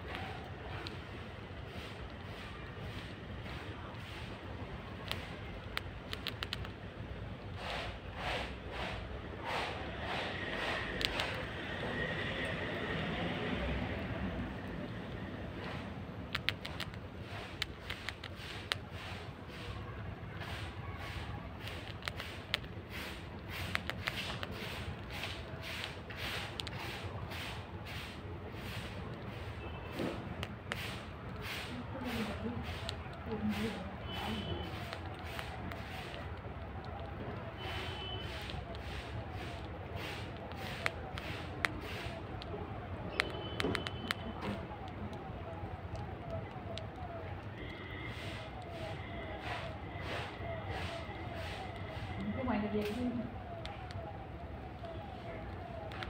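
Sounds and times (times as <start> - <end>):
squirrel chewing grains: 0.0 - 56.0.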